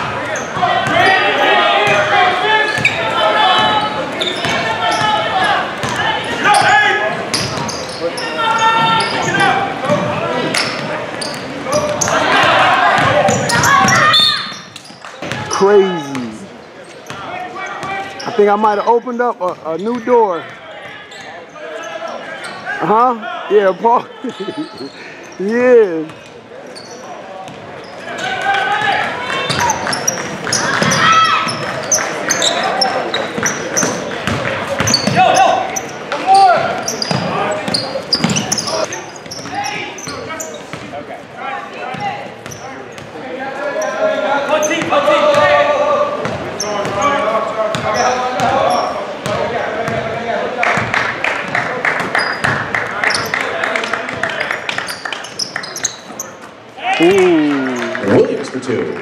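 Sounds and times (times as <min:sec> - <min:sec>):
echoing voices: 0:15.4 - 0:16.6, 0:56.8 - 0:59.0.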